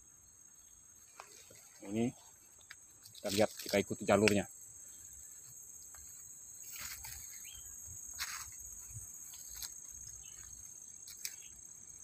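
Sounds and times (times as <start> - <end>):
insects trilling: 0.0 - 12.0
rustling through vegetation: 1.0 - 12.0.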